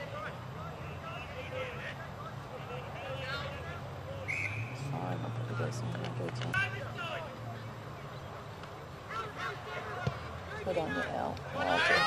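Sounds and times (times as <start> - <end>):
people calling out: 9.0 - 12.0.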